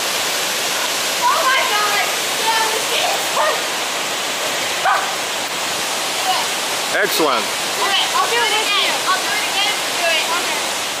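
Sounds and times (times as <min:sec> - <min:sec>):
waterfall rushing into a pool: 0:00.0 - 0:11.0.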